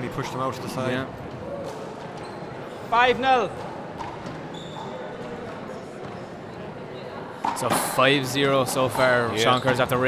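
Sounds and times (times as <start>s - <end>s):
faint murmur of spectators: 3.5s - 10.0s.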